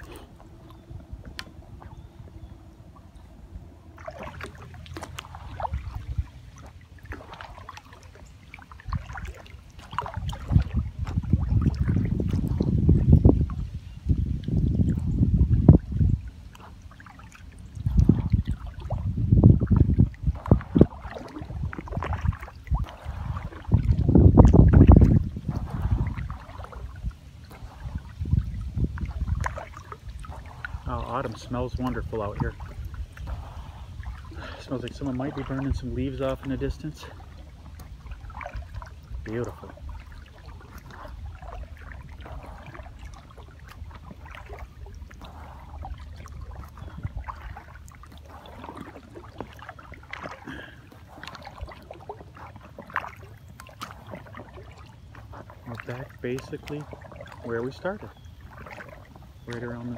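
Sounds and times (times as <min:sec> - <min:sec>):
paddle strokes: 0:00.0 - 0:59.9
water moving around hull: 0:00.0 - 0:59.9
water splashing and dripping: 0:00.0 - 0:59.9.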